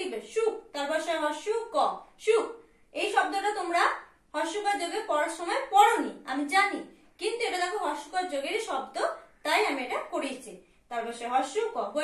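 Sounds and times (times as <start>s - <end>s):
woman speaking: 0.0s - 12.0s.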